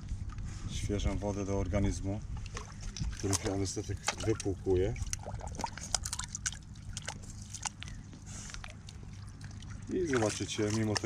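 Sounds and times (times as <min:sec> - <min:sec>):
water drips and plinks: 0:02.4 - 0:11.0
water trickling through channel: 0:02.4 - 0:11.0.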